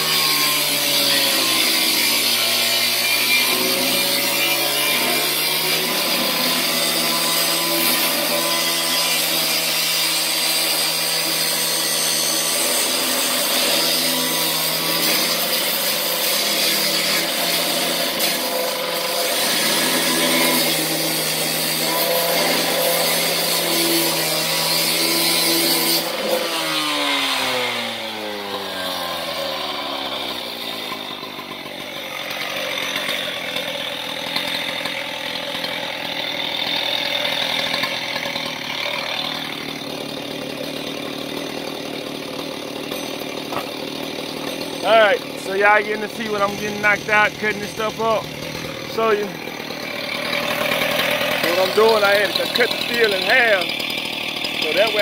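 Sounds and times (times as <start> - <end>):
cut-off saw cutting steel: 0.0 - 55.0.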